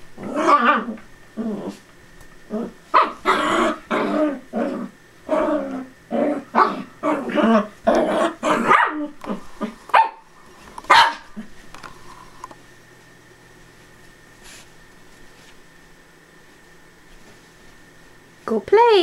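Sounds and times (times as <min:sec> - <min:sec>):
small dogs growling: 0:00.1 - 0:09.9
small dogs barking: 0:02.7 - 0:11.5.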